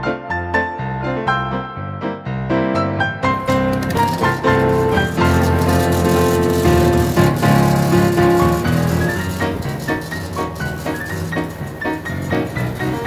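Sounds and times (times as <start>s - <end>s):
piano-led instrumental music: 0.0s - 13.0s.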